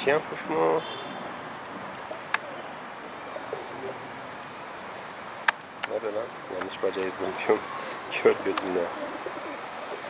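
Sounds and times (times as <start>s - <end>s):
pigeons cooing: 0.6s - 10.0s.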